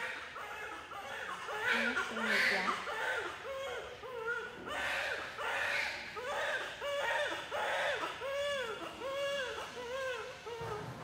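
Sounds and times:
newborn baby crying: 0:00.0 - 0:10.8.

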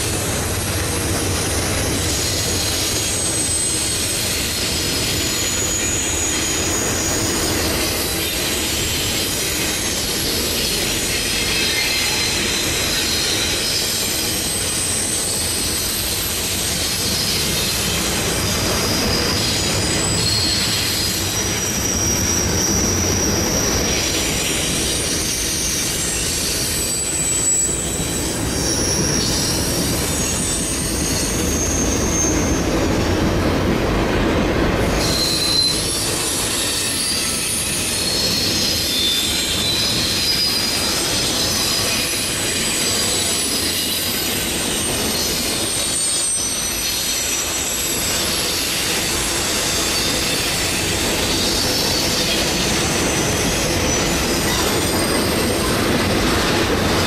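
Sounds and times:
freight train rumble and clatter: 0:00.0 - 0:57.0
train wheels squealing on rails: 0:00.0 - 0:57.0.

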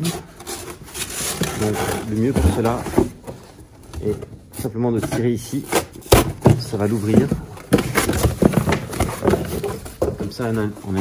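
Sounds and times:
cardboard box crackling: 0:00.0 - 0:11.0.

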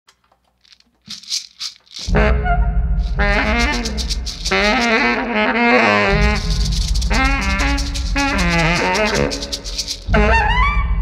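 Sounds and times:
shaker rattles: 0:00.5 - 0:02.2, 0:03.0 - 0:05.4, 0:06.0 - 0:10.2.

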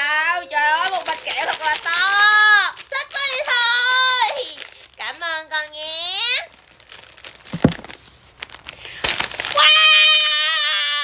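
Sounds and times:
plastic packaging crinkling: 0:00.2 - 0:09.9
sharp knock: 0:07.5 - 0:07.9.

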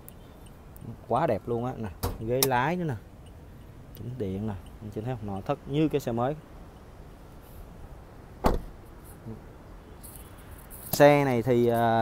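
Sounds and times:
car door shutting: 0:02.0 - 0:02.6, 0:08.4 - 0:09.0.

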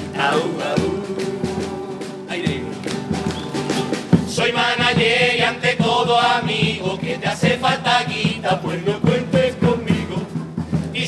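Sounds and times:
drum beating steady rhythm: 0:00.0 - 0:11.0
guitar: 0:00.0 - 0:11.0
men singing in unison: 0:00.0 - 0:11.0.

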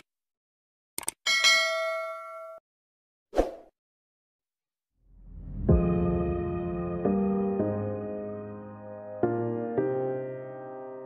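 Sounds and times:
notification bell ding: 0:01.3 - 0:02.6.

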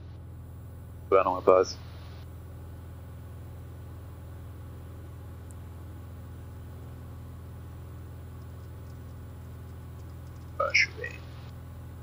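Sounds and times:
aircraft engine and propeller drone: 0:00.0 - 0:12.0.

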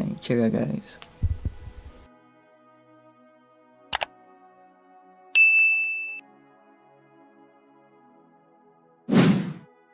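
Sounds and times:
faint background music: 0:00.0 - 0:05.6
notification bell ding: 0:05.4 - 0:06.2.

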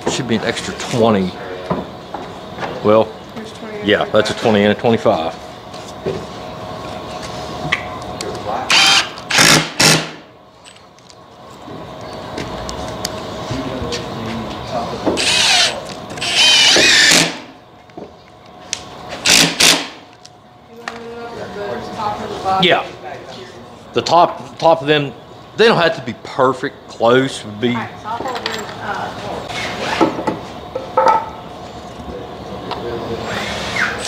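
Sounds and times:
cordless drill driving screws: 0:08.7 - 0:10.0, 0:15.2 - 0:17.4, 0:19.2 - 0:19.9.

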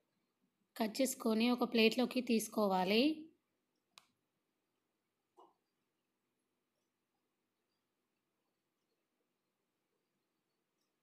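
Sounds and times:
woman speaking: 0:00.8 - 0:03.4.

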